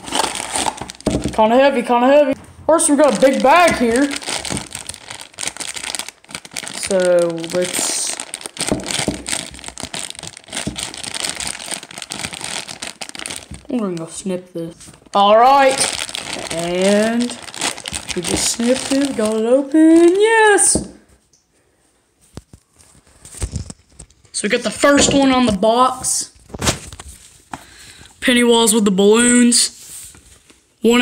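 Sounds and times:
plastic foil bag crinkling: 0.0s - 1.5s, 2.9s - 20.7s, 22.6s - 25.6s
dull bumps inside bag: 8.6s - 11.7s.

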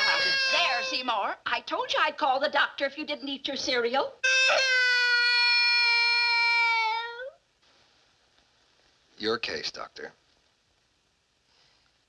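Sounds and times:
small boy wailing: 0.0s - 1.1s, 4.2s - 7.4s.

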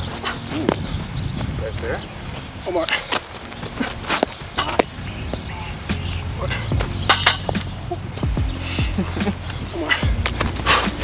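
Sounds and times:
footsteps on turf: 0.0s - 11.0s.

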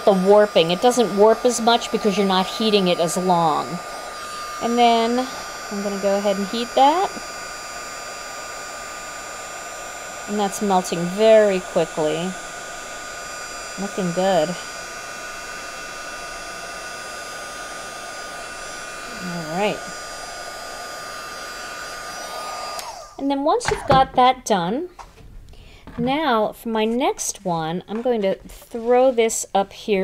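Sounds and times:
heat tool blowing hot air: 0.0s - 24.0s.

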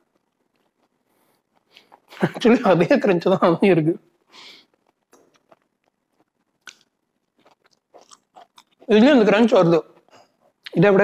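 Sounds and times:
chewing crunchy fried food: 4.7s - 8.9s.

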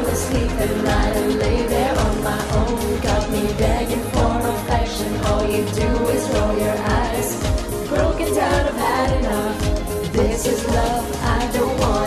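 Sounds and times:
woman singing into microphone: 0.0s - 12.0s
kick drum beat: 0.4s - 12.0s.

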